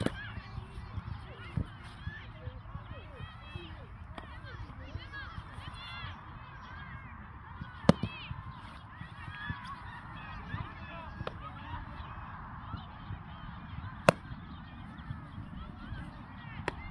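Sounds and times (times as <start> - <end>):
flock of birds calling: 0.0 - 16.9.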